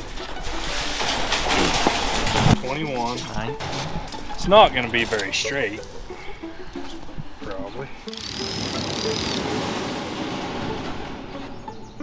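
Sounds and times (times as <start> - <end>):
flexing metal sheet wobble: 0.0 - 5.0
steel sheets scraping together: 0.0 - 5.8, 8.1 - 12.0.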